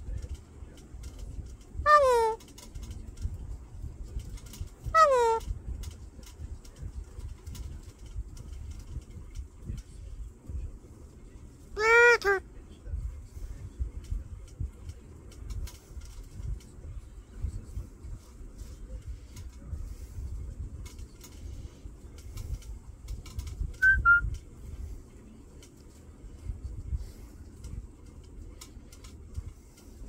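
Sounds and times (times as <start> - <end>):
parrot two-part call: 1.9 - 2.4, 5.0 - 5.4, 11.8 - 12.4, 23.8 - 24.2
parrot whistling: 5.0 - 5.4, 23.8 - 24.3.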